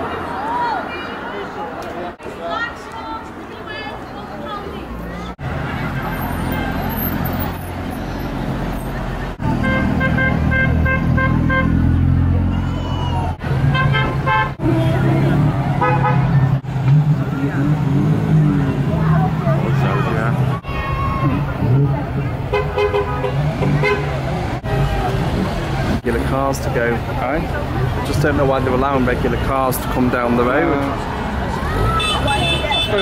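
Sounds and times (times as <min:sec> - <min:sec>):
crowd voices: 0:00.0 - 0:33.0
car engines driving past: 0:03.4 - 0:33.0.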